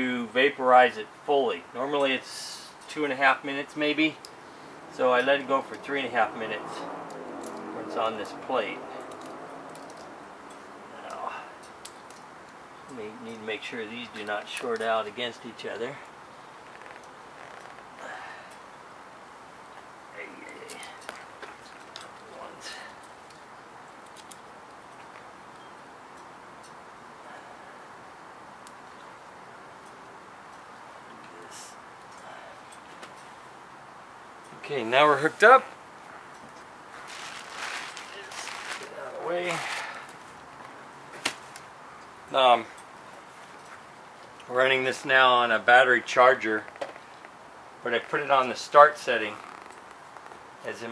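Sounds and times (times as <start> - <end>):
steady background hiss: 0.0 - 50.9
clicks and rustles of wires: 6.7 - 26.9, 28.3 - 33.6, 34.4 - 44.5, 46.6 - 50.9.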